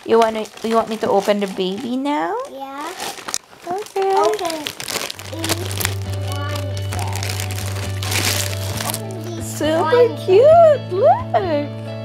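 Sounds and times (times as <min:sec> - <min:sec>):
plastic wrapping crinkling: 0:00.0 - 0:09.4
background music: 0:05.0 - 0:12.0.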